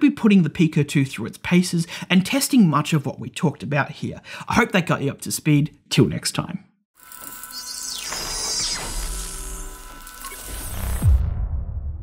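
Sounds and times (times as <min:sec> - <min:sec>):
held synth tones: 0:07.0 - 0:11.0
deep boom: 0:11.0 - 0:12.0.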